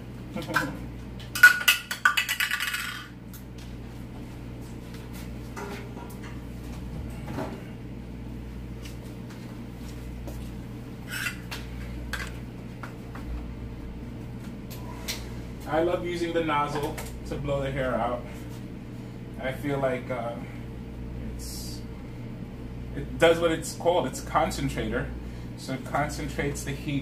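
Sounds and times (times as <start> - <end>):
clatter of hard objects: 1.3 - 3.1.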